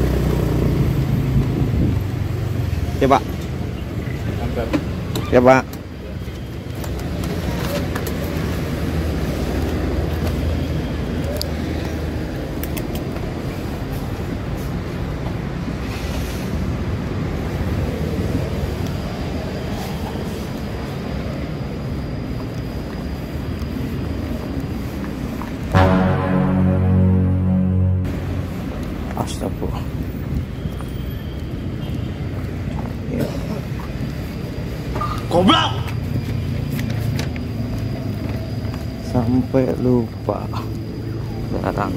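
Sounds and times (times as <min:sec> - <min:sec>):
traffic noise: 0:00.0 - 0:41.9.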